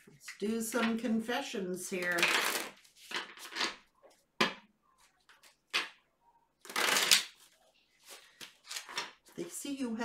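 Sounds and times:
cards being shuffled: 2.1s - 3.8s, 6.6s - 9.2s.

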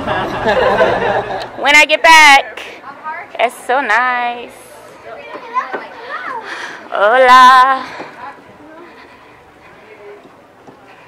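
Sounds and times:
people talking: 0.2s - 11.0s.

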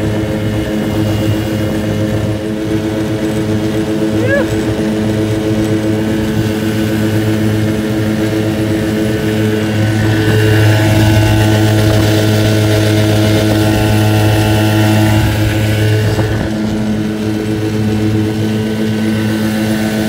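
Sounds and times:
outboard motor running: 0.0s - 20.0s.

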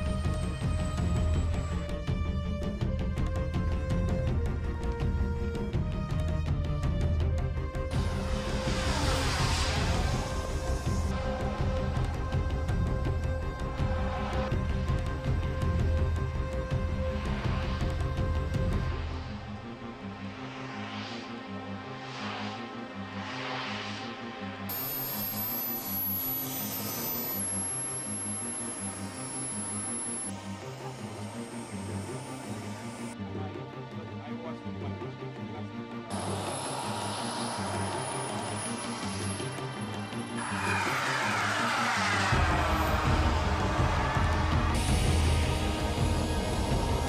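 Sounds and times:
background music with steady beat: 0.0s - 47.0s.

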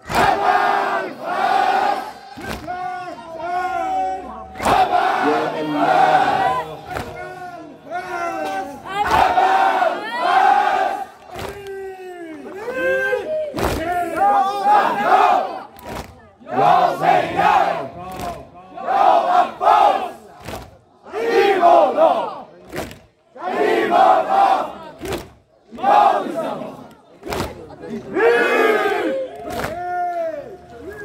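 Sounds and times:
hands slapping chests: 2.4s - 2.8s, 6.9s - 7.2s, 11.2s - 11.8s, 13.6s - 14.0s, 15.7s - 16.2s, 18.1s - 18.5s, 20.4s - 20.8s, 22.6s - 23.1s, 25.0s - 25.4s, 27.2s - 27.6s, 29.4s - 29.8s.

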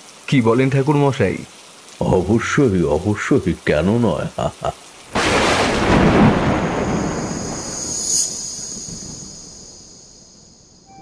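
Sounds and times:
faint rain: 0.0s - 11.0s
thunder rumbling: 5.1s - 10.2s.

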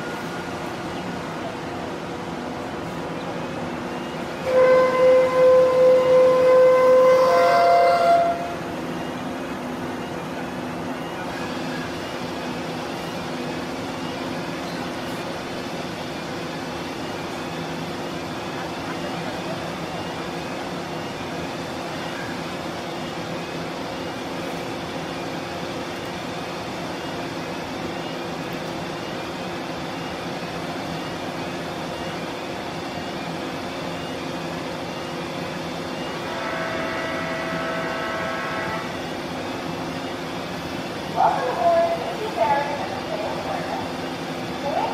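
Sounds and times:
ferry engine drone: 0.0s - 44.9s.

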